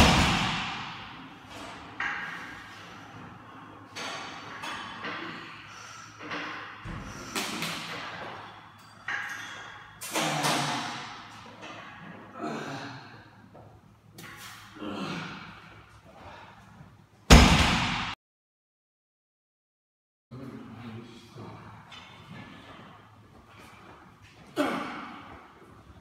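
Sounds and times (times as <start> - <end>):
barbell plates thudding on floor: 0.0 - 1.2.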